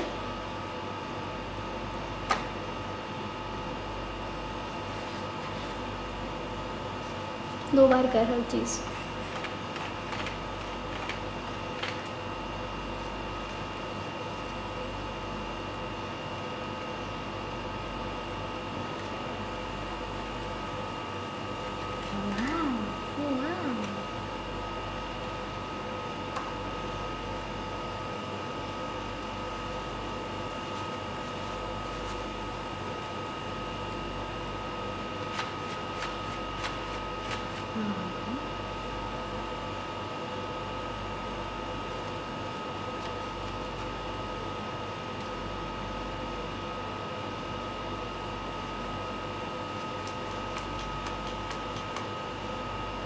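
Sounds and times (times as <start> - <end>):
steady fan hum: 0.0 - 53.0
murmured voice: 37.8 - 38.5.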